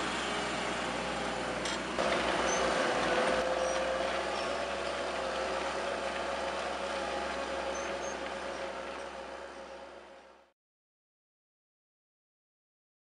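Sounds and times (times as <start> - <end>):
tractor working under load: 0.0 - 10.5.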